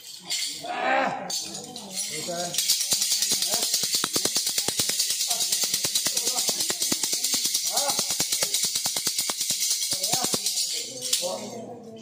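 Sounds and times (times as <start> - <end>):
rhythmic metallic jingling: 0.0 - 12.0.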